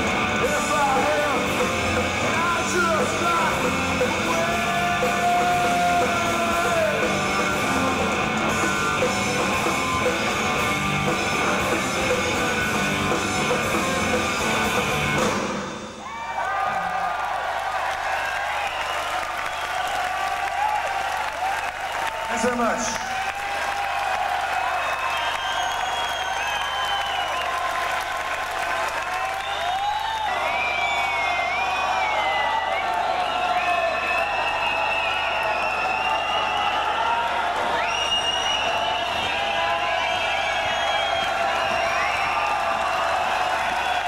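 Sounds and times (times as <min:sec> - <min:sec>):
crowd shouting: 0:00.0 - 0:12.5, 0:15.7 - 0:18.9, 0:31.2 - 0:44.0
rock band chord: 0:00.0 - 0:15.7
crowd cheering and applauding: 0:00.0 - 0:44.0
whistles: 0:18.5 - 0:20.1, 0:24.8 - 0:27.6, 0:29.2 - 0:42.7, 0:43.6 - 0:44.0.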